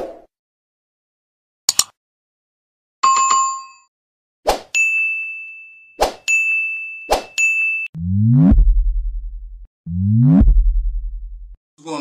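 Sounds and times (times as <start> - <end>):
bell-like ding: 4.8 - 7.9
deep pulsing bass hit: 8.0 - 11.6
rising swoop: 9.9 - 10.9.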